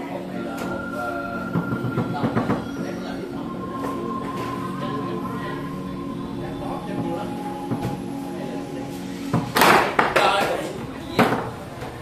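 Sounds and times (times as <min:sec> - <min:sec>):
steady background hum: 0:00.0 - 0:12.0
foosball rods and ball clacking: 0:09.3 - 0:12.0.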